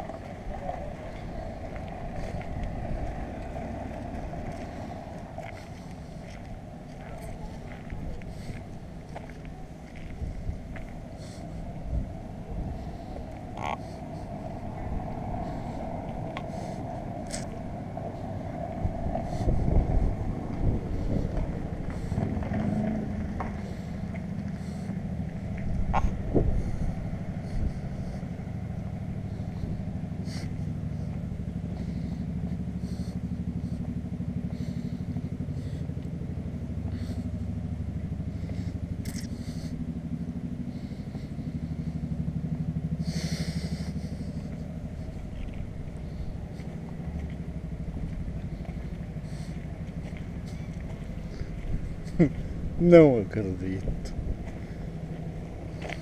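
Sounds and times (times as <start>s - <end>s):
vehicle engine humming: 0.0s - 56.0s.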